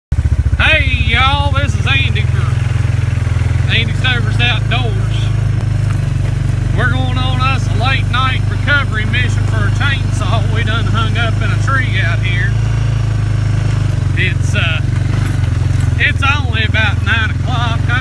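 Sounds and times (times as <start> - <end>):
off-road vehicle engine humming: 0.1 - 18.0
person's voice: 0.6 - 2.7, 3.7 - 5.4, 6.7 - 12.6, 14.1 - 14.9, 16.0 - 18.0.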